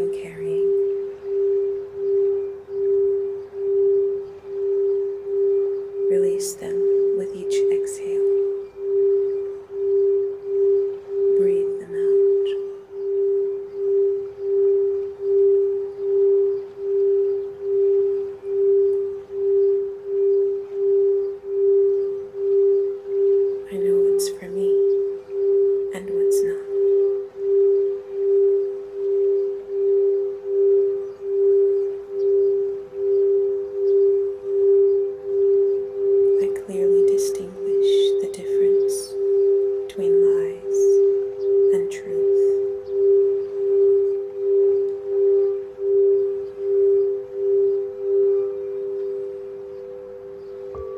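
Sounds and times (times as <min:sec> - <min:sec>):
singing bowl tone: 0:00.0 - 0:50.9.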